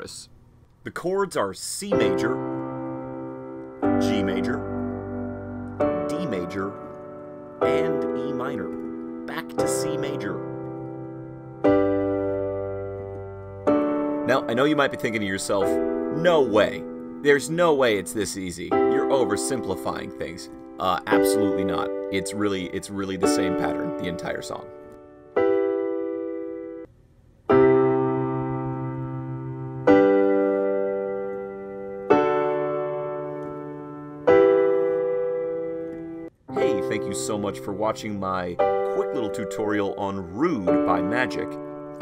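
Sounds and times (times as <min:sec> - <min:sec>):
piano chords: 0:01.9 - 0:26.9, 0:27.5 - 0:42.0.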